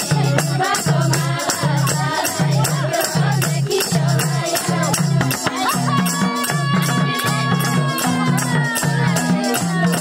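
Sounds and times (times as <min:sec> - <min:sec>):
group of women singing: 0:00.0 - 0:10.0
hand drum beat: 0:00.0 - 0:10.0
tambourine jingling: 0:00.0 - 0:10.0.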